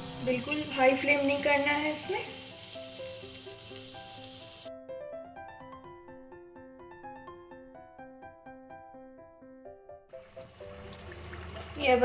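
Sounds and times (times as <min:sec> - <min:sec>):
food sizzling in hot oil: 0:00.0 - 0:04.7, 0:10.1 - 0:12.0.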